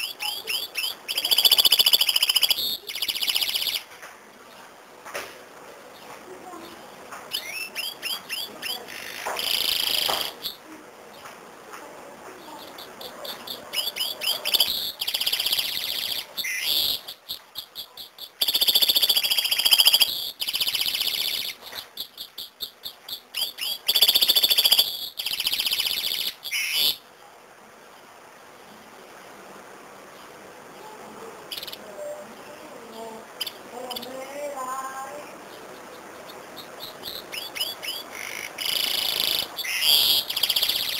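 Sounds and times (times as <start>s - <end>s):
canary singing trills: 0.0s - 4.7s, 5.9s - 11.3s, 12.3s - 27.1s, 30.2s - 40.9s.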